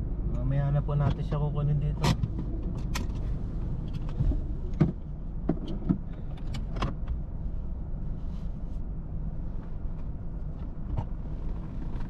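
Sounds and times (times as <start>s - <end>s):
steady low rumble: 0.0s - 12.0s
clicks and rattles in car: 0.9s - 7.2s, 9.9s - 12.0s.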